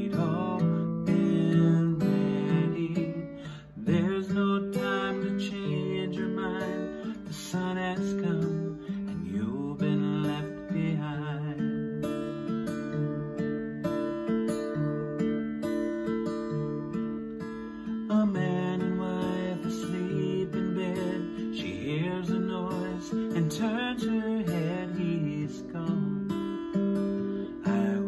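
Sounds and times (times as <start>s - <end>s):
man singing softly: 0.0s - 13.2s, 17.8s - 26.6s, 27.2s - 28.0s
acoustic guitar strumming: 0.0s - 28.0s.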